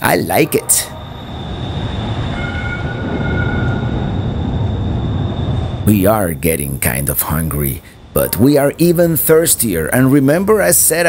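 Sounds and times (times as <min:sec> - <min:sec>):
light rail train passing: 0:00.0 - 0:11.0.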